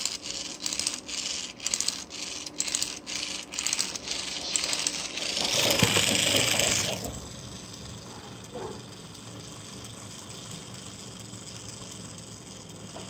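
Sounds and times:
clockwork metallic rattling: 0.0 - 12.9
clockwork whirr: 0.0 - 13.0.

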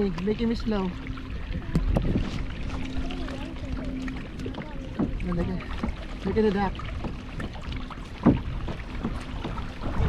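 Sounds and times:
water lapping against a hull: 0.0 - 10.0
wind on microphone: 0.8 - 10.0.

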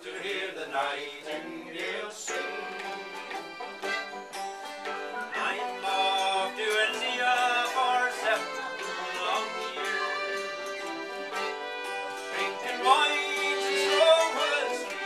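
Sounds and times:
acoustic guitar strumming: 1.3 - 15.0
mandolin picking: 1.4 - 15.0.

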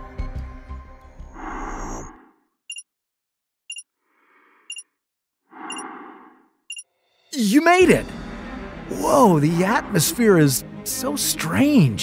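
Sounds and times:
background music: 0.0 - 1.4, 7.3 - 12.0
hissing breaths: 1.3 - 2.4
electronic countdown beeps: 4.7 - 4.9, 5.7 - 5.9.

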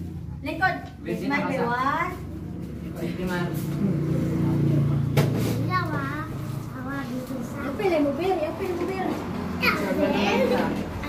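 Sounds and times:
children and adults chattering: 0.5 - 11.0.

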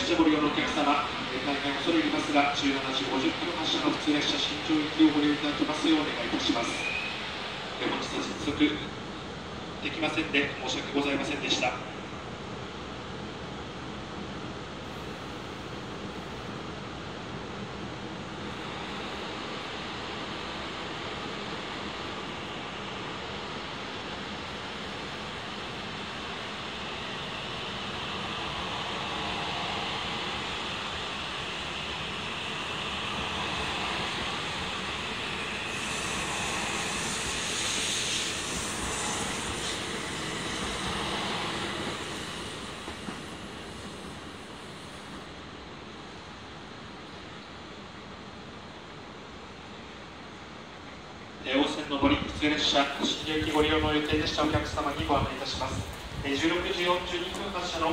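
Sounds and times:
rushing hiss of train: 0.0 - 57.9
train passing at speed: 0.0 - 57.9.

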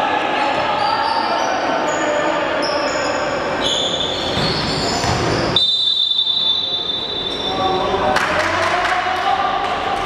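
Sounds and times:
players' voices: 0.0 - 10.0
sneaker squeaks: 0.5 - 7.8
referee's whistle blast: 3.6 - 7.6.

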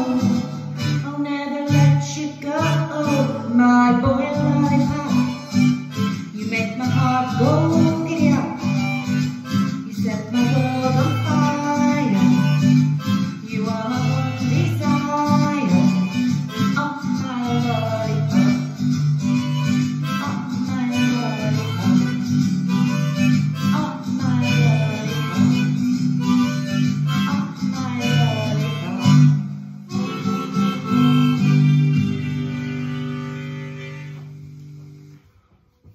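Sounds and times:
harmonica solo: 0.0 - 35.2
acoustic guitar chords: 0.0 - 35.9.

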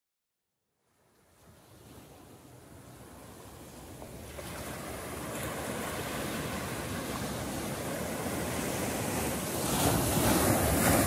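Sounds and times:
ocean waves on a sandy beach: 0.8 - 11.0.

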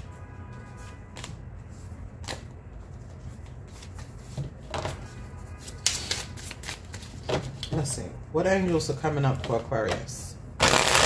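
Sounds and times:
cards being shuffled: 5.8 - 7.8, 10.6 - 11.0.

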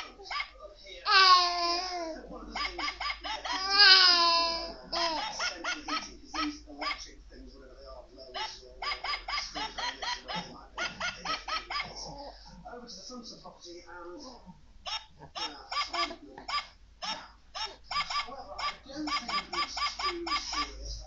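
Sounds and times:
baby babbling: 1.1 - 2.2, 3.5 - 5.3
baby crying: 1.1 - 2.2, 3.5 - 5.3.

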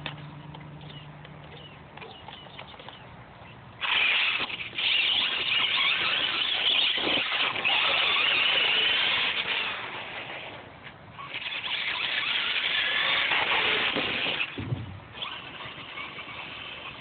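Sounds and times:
tyre noise on asphalt: 0.0 - 17.0.

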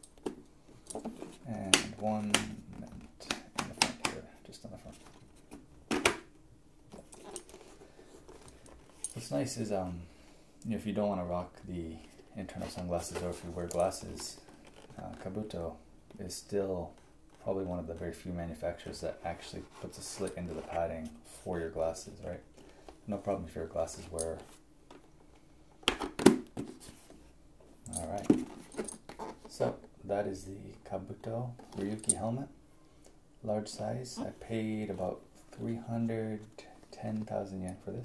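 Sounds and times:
helmet handling ticks and rustles: 0.0 - 10.0, 10.6 - 38.0.

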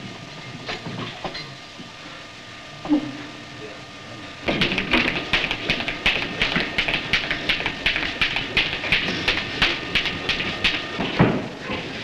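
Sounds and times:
fast sharp taps: 4.5 - 10.8.

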